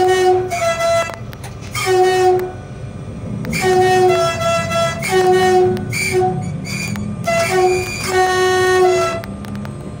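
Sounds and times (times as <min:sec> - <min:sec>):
two-tone train horn blasts: 0:00.0 - 0:02.8, 0:03.4 - 0:09.6
train running rumble: 0:00.0 - 0:10.0.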